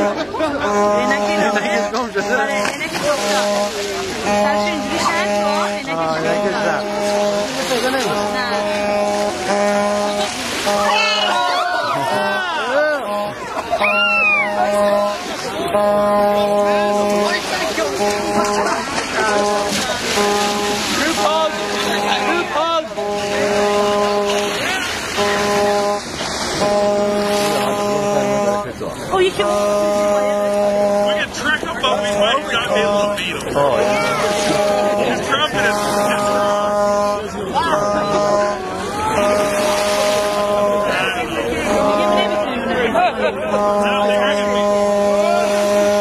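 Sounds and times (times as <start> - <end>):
horn blasts: 0.0 - 46.0
people's voices: 0.0 - 46.0
steady droning tone: 0.0 - 46.0
people whooping and yelling: 10.8 - 12.9, 13.6 - 14.6.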